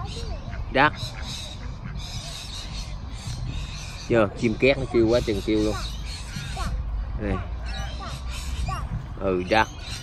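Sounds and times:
parrots squawking: 0.0 - 10.0.

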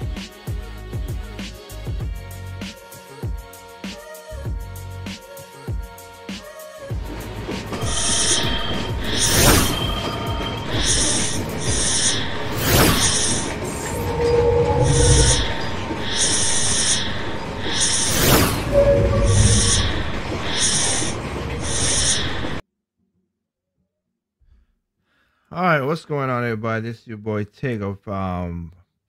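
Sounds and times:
whooshing sweeps: 7.8 - 22.6.

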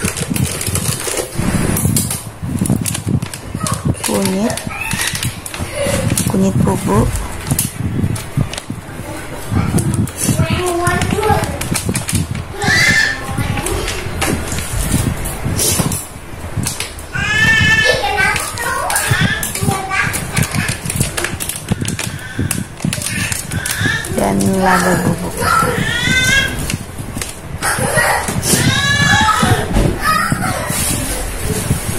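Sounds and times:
hands rubbing fish in plastic tub: 0.0 - 31.9
high-pitched voices calling out: 3.5 - 7.6, 8.4 - 14.2, 17.1 - 27.0, 27.6 - 31.4.

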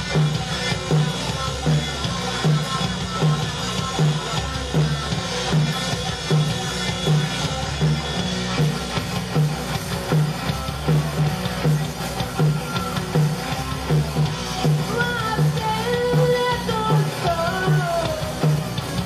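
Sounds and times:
bass guitar: 0.0 - 19.0
drum kit: 0.0 - 19.0
electric guitars: 0.0 - 19.0.

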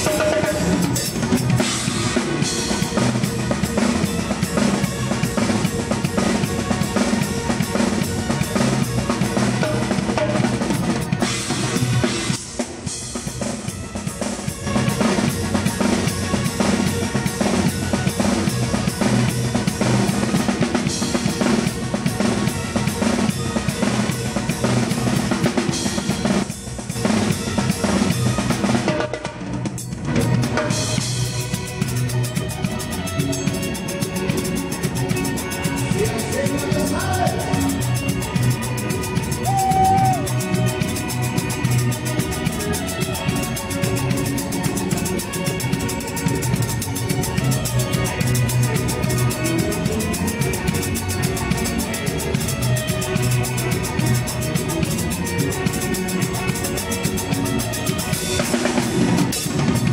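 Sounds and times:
cymbals: 0.0 - 59.9
snare drum: 0.0 - 59.9
bass drum: 14.6 - 59.9.

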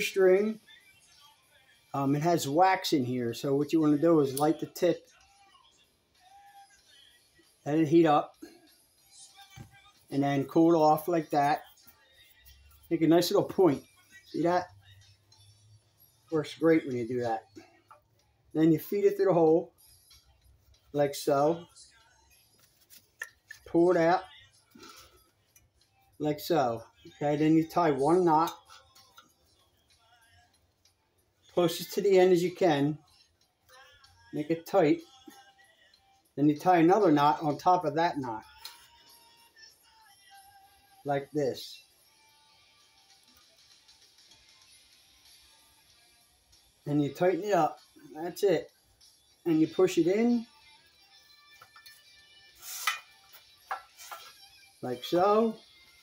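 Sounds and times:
faint background music: 0.0 - 56.0.

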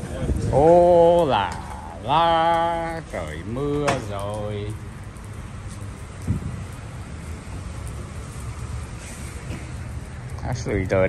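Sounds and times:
rain on wet pavement: 0.0 - 11.0
traffic rumble: 0.0 - 11.0
wind rumble: 0.0 - 11.0.

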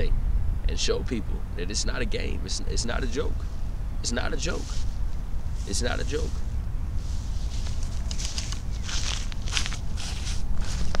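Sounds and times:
wind rumble on microphone: 0.0 - 11.0
footsteps on dry grass: 4.2 - 11.0.

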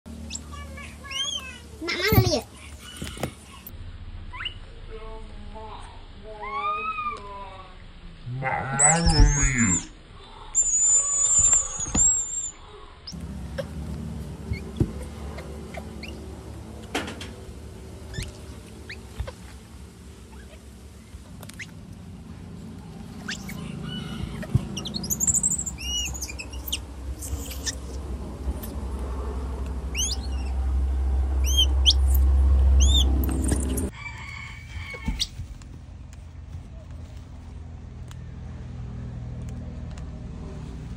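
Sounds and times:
low steady rumble: 0.1 - 40.9
baby monkeys squealing: 0.2 - 3.6, 4.3 - 4.6, 8.7 - 10.0, 10.6 - 12.6, 14.5 - 16.3, 18.1 - 19.5, 20.3 - 20.7, 23.1 - 28.0, 29.9 - 30.6, 31.4 - 32.2, 32.8 - 33.9
birds chirping: 10.6 - 16.7, 23.0 - 28.9, 29.7 - 33.9.

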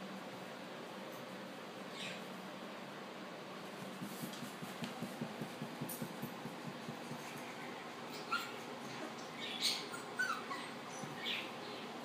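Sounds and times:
puppy yipping and whimpering: 7.5 - 11.6.

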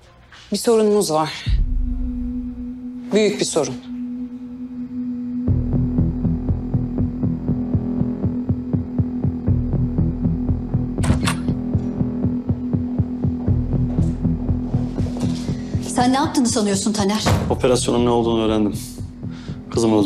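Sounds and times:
low drone: 1.5 - 16.0
rhythmic throbbing pulse: 1.5 - 20.0.

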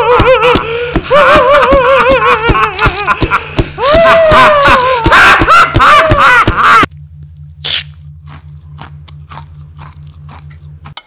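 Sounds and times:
low pulsing hum: 0.0 - 11.0.

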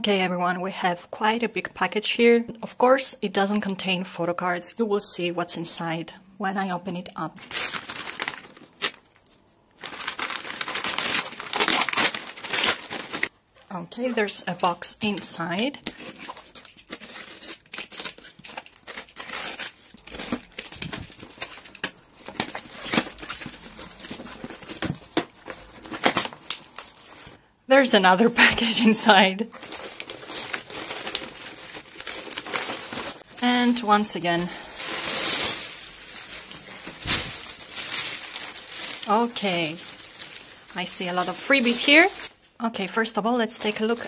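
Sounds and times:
plastic crinkling: 7.4 - 13.3, 14.5 - 27.4, 29.4 - 42.5, 43.5 - 44.0
plastic wrap being torn: 7.4 - 13.3, 15.1 - 27.3, 29.5 - 33.9, 34.5 - 42.4.

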